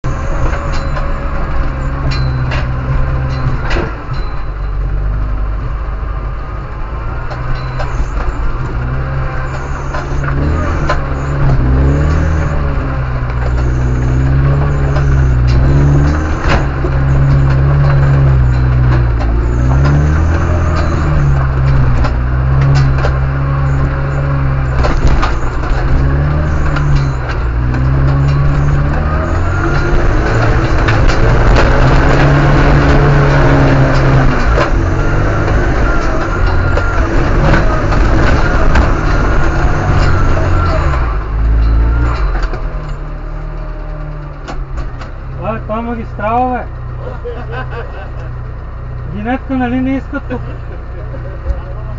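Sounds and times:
off-road vehicle engine revving: 0.0 - 51.9
vehicle knocking over ruts: 0.0 - 51.9.

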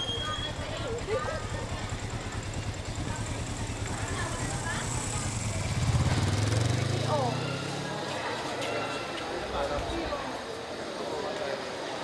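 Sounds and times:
motorcycle engine idling: 0.0 - 7.7
faint voices: 0.0 - 12.0.

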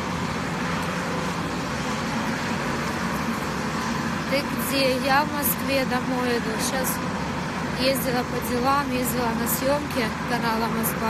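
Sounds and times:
road traffic passing cars: 0.0 - 11.0.

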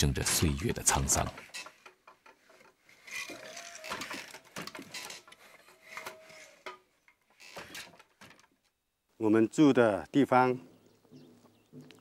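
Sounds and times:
wooden loom knocks and clatters: 0.0 - 8.7
wooden creaks: 0.0 - 8.8.

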